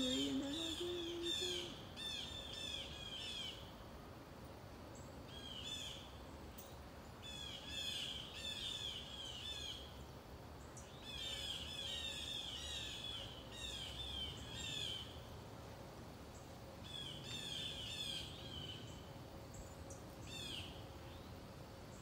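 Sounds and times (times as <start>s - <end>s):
songbird chirping: 0.0s - 3.9s, 4.8s - 15.4s, 16.2s - 22.0s.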